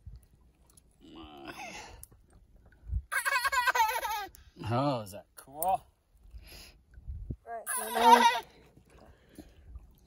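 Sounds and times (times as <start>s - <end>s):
child giggling: 3.1s - 4.3s.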